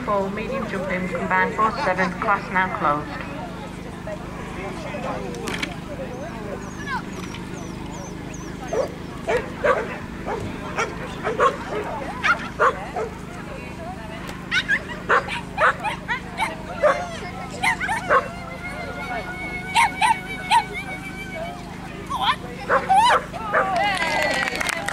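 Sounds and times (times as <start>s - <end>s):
small dog yapping: 6.6s - 13.2s, 14.5s - 21.1s, 22.1s - 23.9s.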